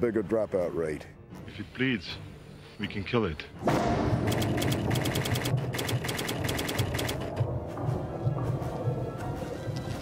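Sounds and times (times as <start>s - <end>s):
low pulsing music: 0.0s - 10.0s
rapid typewriter clicks: 4.3s - 7.3s.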